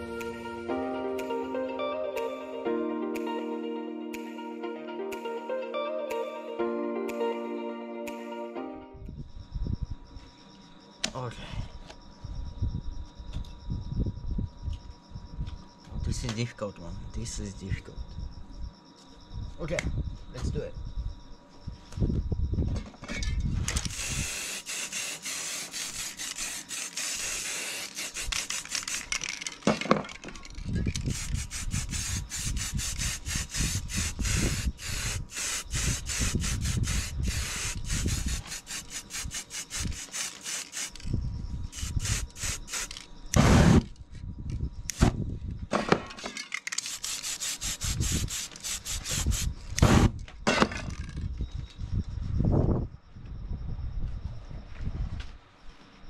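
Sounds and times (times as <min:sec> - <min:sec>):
spray-paint can hissing: 0:23.8 - 0:29.4, 0:31.0 - 0:41.1, 0:41.7 - 0:43.1, 0:46.8 - 0:49.5.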